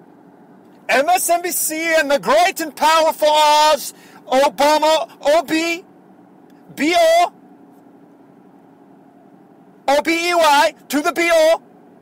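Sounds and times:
faint background hum: 0.0 - 12.0
person speaking: 0.9 - 5.8, 6.6 - 7.4, 9.9 - 11.6.

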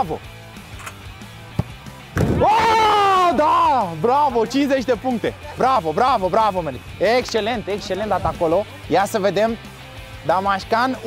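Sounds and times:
man shouting in celebration: 2.4 - 5.9.

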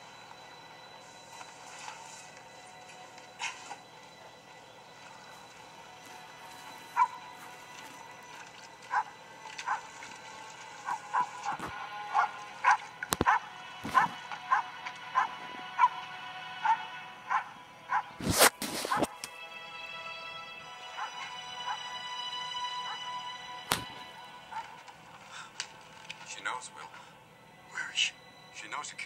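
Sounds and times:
low film score: 0.0 - 29.0
dog barking: 7.0 - 7.2, 8.9 - 9.9, 10.8 - 16.0, 16.6 - 18.1, 21.0 - 21.9, 24.5 - 24.8.

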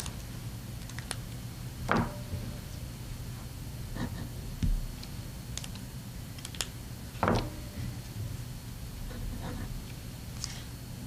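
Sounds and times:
pens clicking on tabletop: 6.4 - 6.7.

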